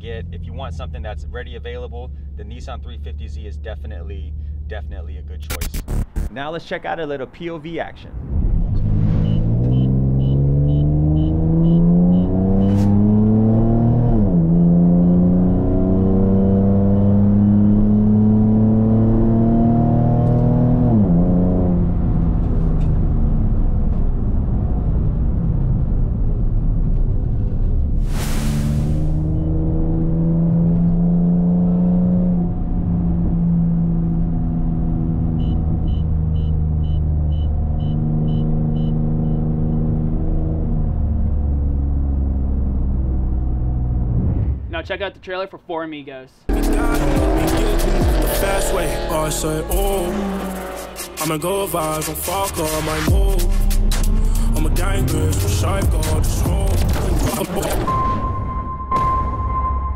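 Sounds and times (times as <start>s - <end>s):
car engine accelerating through gears: 8.4s - 44.6s, 46.5s - 57.9s.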